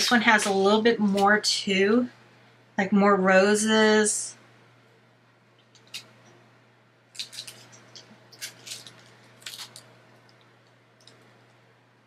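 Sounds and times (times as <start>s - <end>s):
low steady hum: 0.0s - 12.0s
plastic sheets crinkling and clicking: 7.1s - 11.2s.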